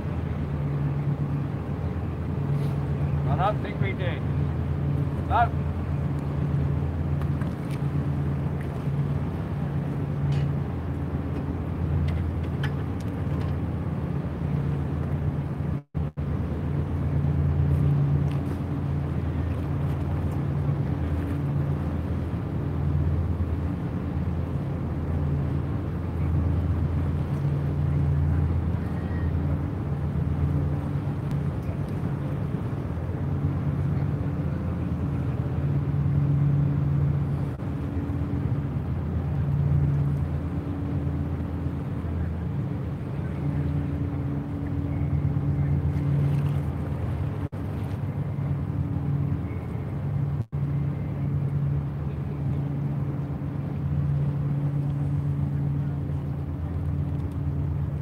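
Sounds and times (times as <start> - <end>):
ship engines droning: 0.0 - 58.0.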